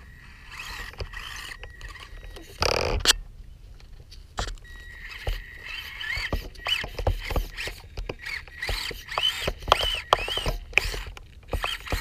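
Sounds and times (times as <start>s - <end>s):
electric motor and gears whining: 0.0s - 3.2s, 4.4s - 12.0s
tyres knocking against stones: 6.1s - 12.0s.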